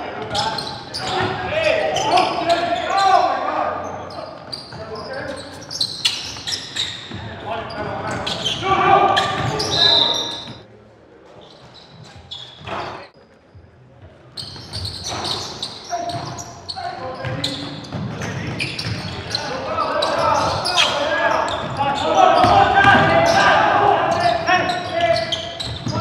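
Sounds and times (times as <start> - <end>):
players shouting: 0.0 - 4.0, 8.0 - 10.5, 19.3 - 26.0.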